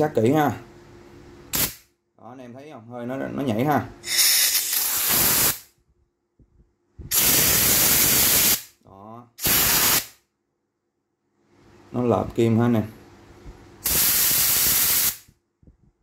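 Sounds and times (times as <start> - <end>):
compressed air hissing from gauge: 1.5 - 1.8, 4.0 - 5.7, 7.1 - 8.7, 9.4 - 10.1, 13.8 - 15.3.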